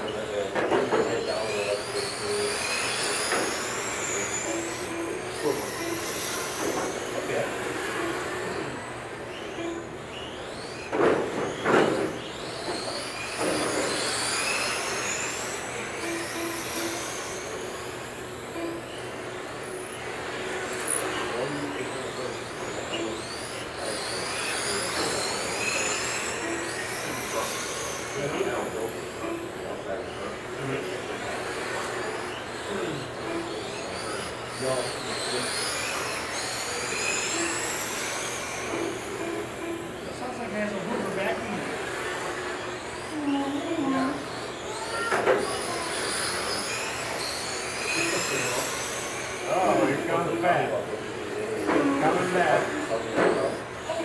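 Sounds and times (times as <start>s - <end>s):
toy race car motors whining: 0.0s - 54.0s.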